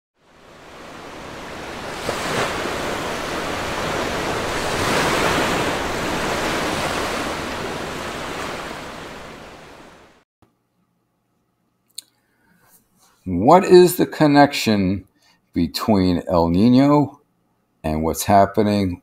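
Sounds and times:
ocean surf washing ashore: 0:00.2 - 0:10.2.

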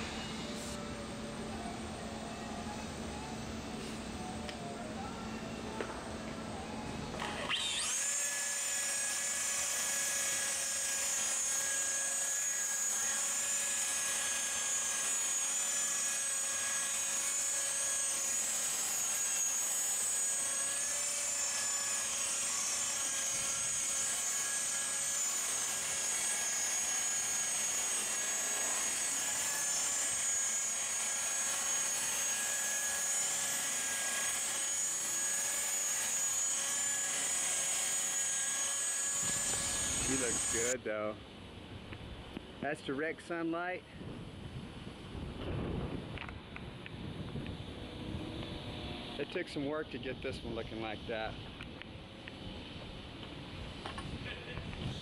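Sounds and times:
rotary polisher whining: 0:00.0 - 0:40.8.

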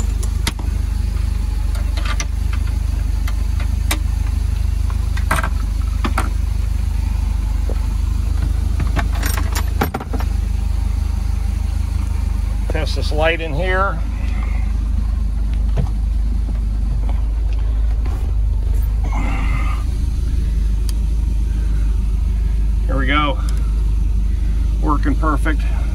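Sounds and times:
boat engine idling: 0:00.0 - 0:25.9
sharp clicks and knocks: 0:01.7 - 0:04.1.

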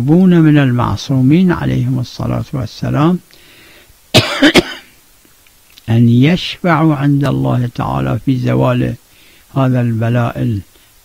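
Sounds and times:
man speaking: 0:00.0 - 0:03.3, 0:05.8 - 0:10.7
man coughing: 0:04.1 - 0:05.0.

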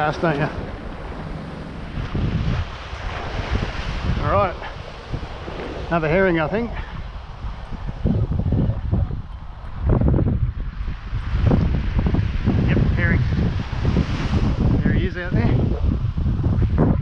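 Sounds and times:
waves washing onto beach: 0:00.0 - 0:08.0
wind buffeting microphone: 0:00.0 - 0:17.0.

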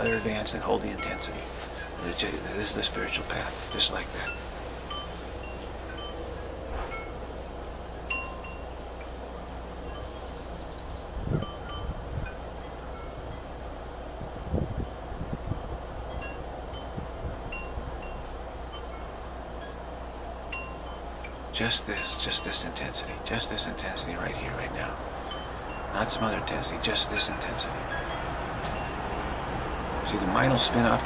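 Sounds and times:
wind chimes tinkling: 0:00.0 - 0:31.0
wind gusts on microphone: 0:01.0 - 0:19.7, 0:24.6 - 0:31.0.

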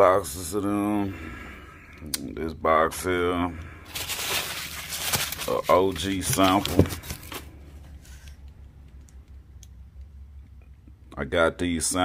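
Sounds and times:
low steady hum: 0:00.0 - 0:12.0
cardboard tubes rustling: 0:03.9 - 0:08.3.

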